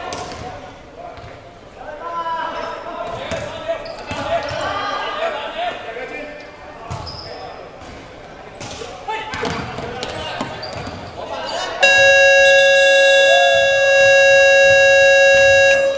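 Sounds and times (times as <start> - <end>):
players' voices echoing: 0.0 - 15.9
scoreboard buzzer: 11.8 - 15.9.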